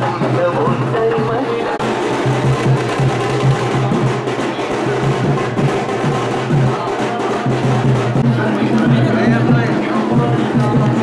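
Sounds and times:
fast drumming: 0.0 - 11.0.

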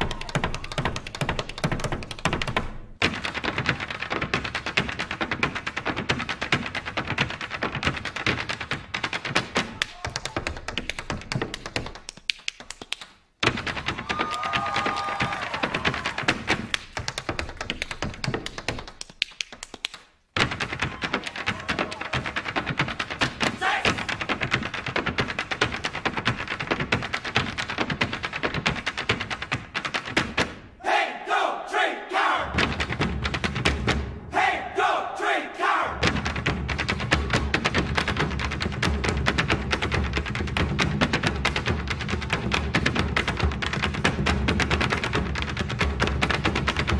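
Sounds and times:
hard shoes tapping on stage floor: 0.0 - 30.8, 32.5 - 34.2, 36.0 - 46.9.

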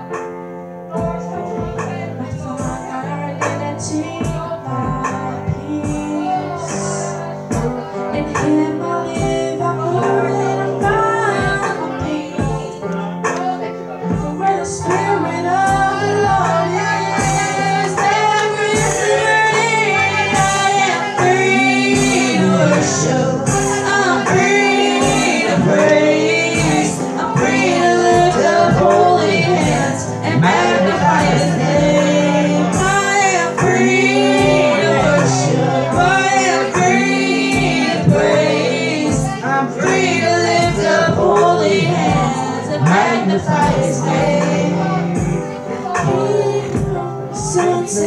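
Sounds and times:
worship song singing: 0.8 - 48.0.

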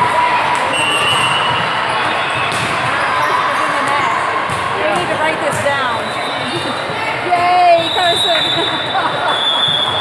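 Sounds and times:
voices calling and chattering: 0.0 - 10.0
balls bouncing on hard floor: 2.4 - 3.0, 3.8 - 8.3.

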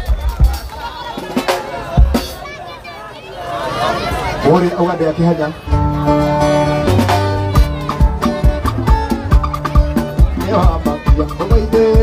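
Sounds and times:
crowd voices: 0.0 - 12.0
deep drum beat: 5.8 - 12.0.

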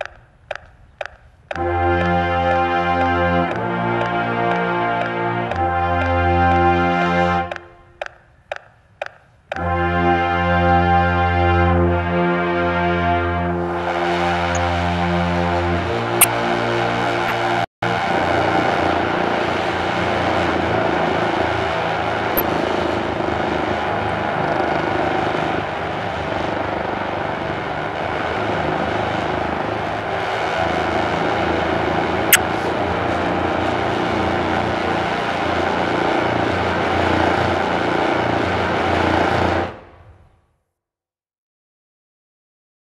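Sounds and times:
brass ensemble holding long tones: 1.5 - 7.9, 9.6 - 39.9.

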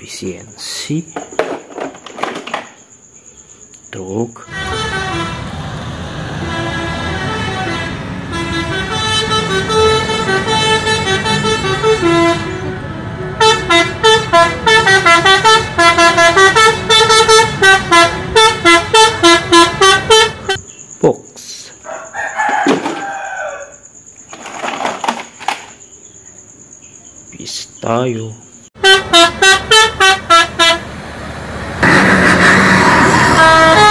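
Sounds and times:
musical air horn playing tune: 4.5 - 20.6, 28.8 - 30.9, 31.8 - 33.9.

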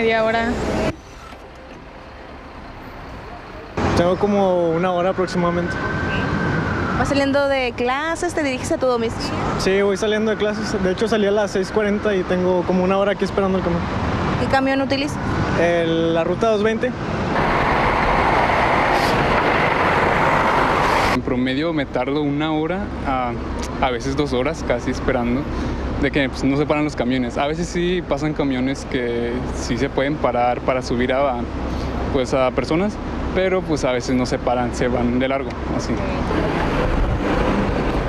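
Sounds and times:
bus engine idling: 0.0 - 3.8
cars and buses passing: 0.0 - 38.0
traffic noise: 0.0 - 38.0.

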